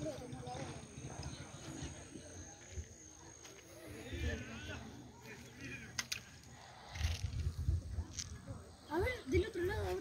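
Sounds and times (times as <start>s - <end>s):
faint indistinct voices: 0.0s - 10.0s.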